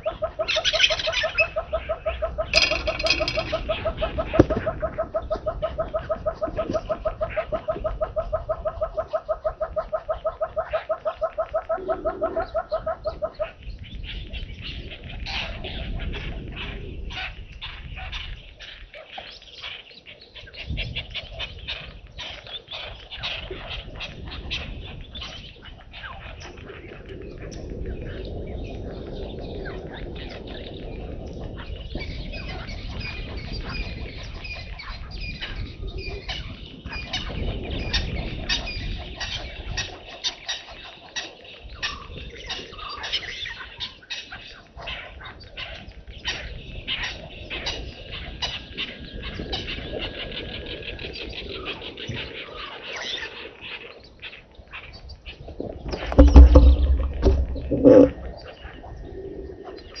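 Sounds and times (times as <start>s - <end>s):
birds chirping: 0.0s - 9.2s, 45.4s - 60.0s
low rumble: 56.0s - 58.6s
loud low bursts: 56.2s - 58.2s.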